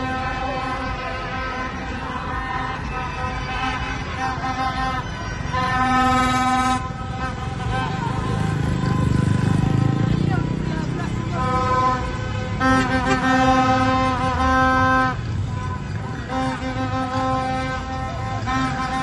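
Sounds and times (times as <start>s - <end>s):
crowd shouting: 0.0s - 9.0s
plastic stadium horns blown: 0.0s - 10.1s, 11.1s - 19.0s
vehicles running in street: 0.0s - 19.0s.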